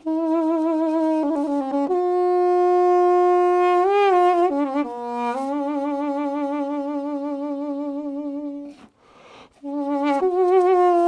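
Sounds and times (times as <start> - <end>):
intake of breath: 8.8 - 9.6
duduk reedy note: 9.6 - 11.0.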